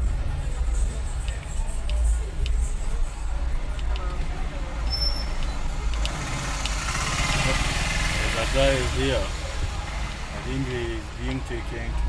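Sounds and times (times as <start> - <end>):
car engine rumble: 0.0 - 12.0
faint voices outside: 0.0 - 12.0
road noise: 0.0 - 12.0.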